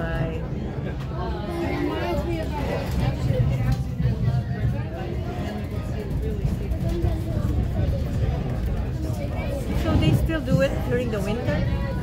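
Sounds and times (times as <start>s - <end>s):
passenger chatter: 0.0s - 12.0s
train rumble: 2.5s - 12.0s.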